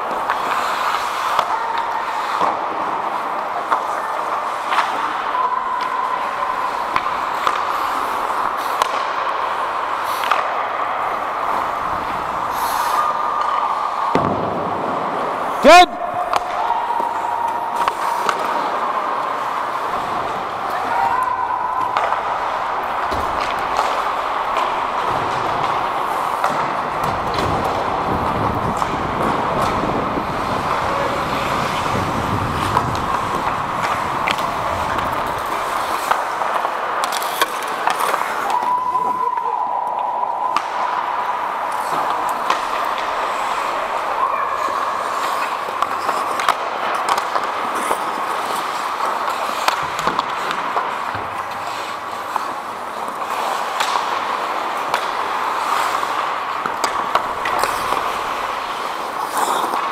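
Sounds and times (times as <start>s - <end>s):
clicks of sticks and puck: 0.0s - 59.9s
skate blades scraping ice: 0.0s - 59.9s.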